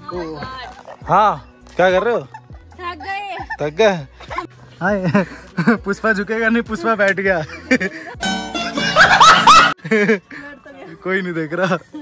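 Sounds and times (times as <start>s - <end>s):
man laughing hard: 8.8s - 10.2s.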